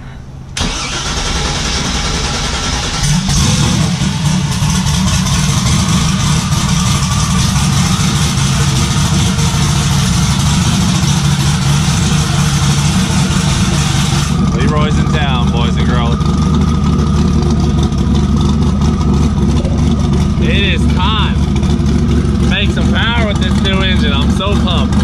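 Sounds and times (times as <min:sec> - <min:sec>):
car engine starting and idling: 0:00.0 - 0:25.0.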